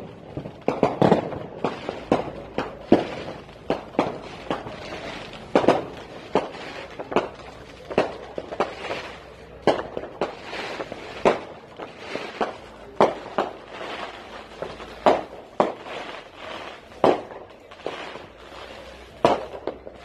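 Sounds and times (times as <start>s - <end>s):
firecrackers banging: 0.0s - 20.0s.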